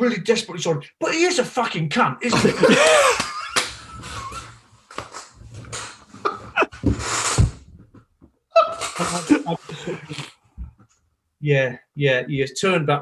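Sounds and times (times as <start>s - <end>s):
men laughing: 2.2s - 4.6s, 6.2s - 7.0s, 8.6s - 10.4s.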